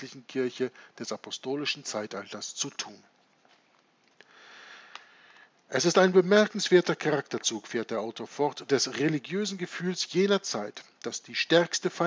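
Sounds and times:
man breathing in: 4.2s - 5.6s.

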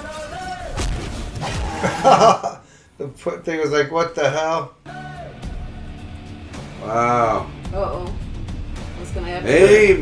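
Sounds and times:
film battle music: 4.9s - 10.0s.

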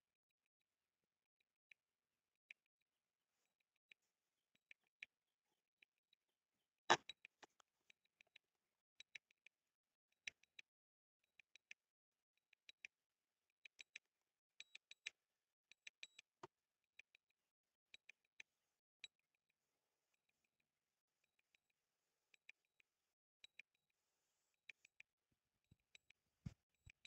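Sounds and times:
faint clicks and ticks: 1.3s - 6.2s, 6.9s - 27.0s.

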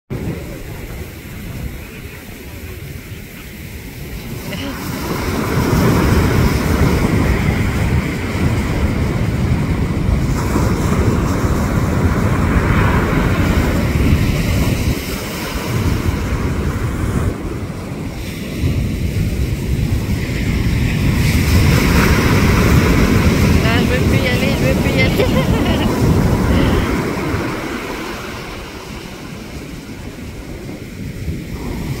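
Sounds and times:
surf washing up beach: 0.1s - 32.0s
wind rumble on microphone: 0.1s - 32.0s.

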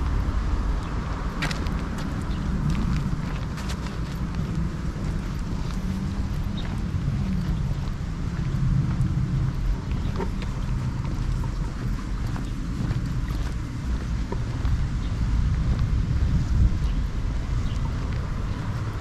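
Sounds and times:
faint footsteps on pavement: 0.0s - 19.0s
wind buffeting microphone: 0.0s - 19.0s.

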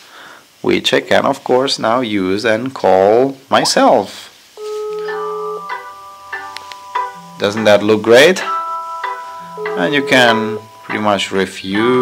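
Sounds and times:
phone ringtone chiming: 4.6s - 11.3s.

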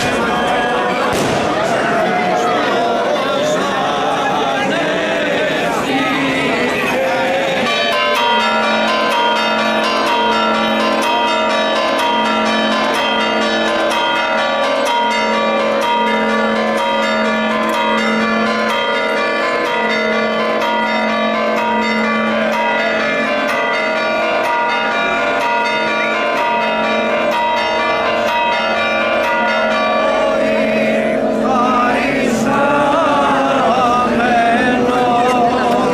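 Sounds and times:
church bells pealing: 0.0s - 35.9s.

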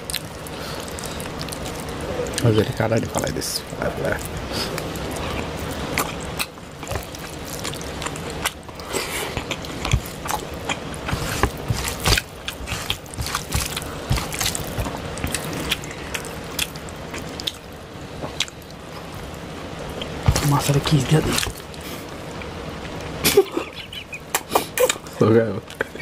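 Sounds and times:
fingers squishing food: 4.1s - 18.8s.

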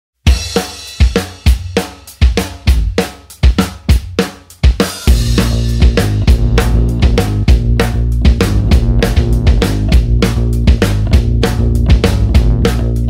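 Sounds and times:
rock drum kit playing: 0.2s - 13.0s
bass and guitar notes: 5.1s - 13.0s.

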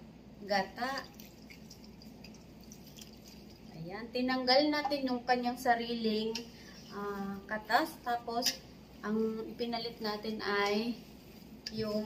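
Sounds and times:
liquid trickling into a bowl: 1.0s - 3.8s.

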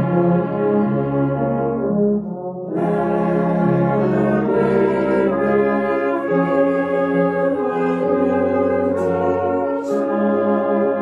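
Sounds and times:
brass band playing a hymn: 0.0s - 11.0s.

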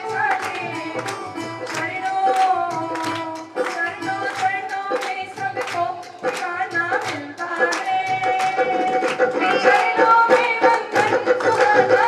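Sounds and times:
crowd clapping in rhythm: 0.0s - 12.0s
devotional song: 0.0s - 12.0s
musical accompaniment: 0.0s - 12.0s.

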